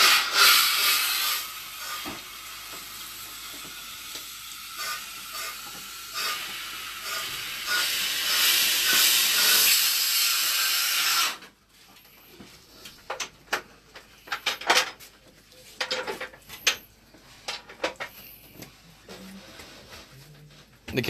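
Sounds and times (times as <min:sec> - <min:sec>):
compressed air hissing: 0:00.0 - 0:11.4.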